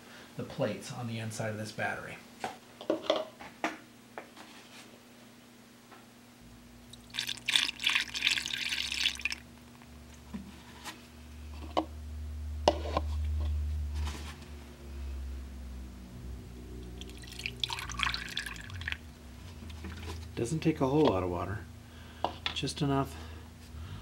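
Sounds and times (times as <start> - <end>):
low hum: 6.4 - 7.5, 9.4 - 20.8
clicks and drips: 6.9 - 9.9.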